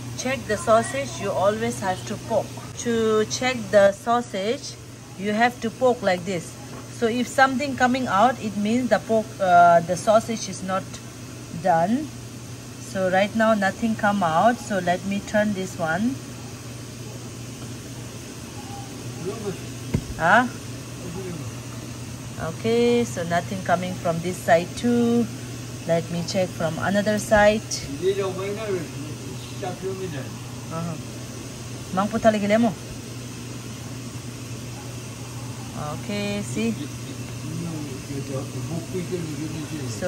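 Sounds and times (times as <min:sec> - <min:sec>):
low hum and hiss: 0:00.0 - 0:40.0.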